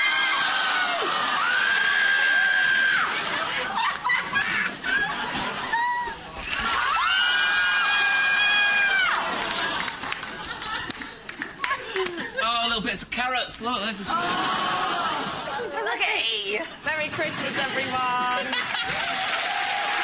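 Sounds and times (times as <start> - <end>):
studio audience cheering and shouting: 0.0 - 4.0, 5.1 - 9.9, 14.1 - 15.8, 18.6 - 20.0.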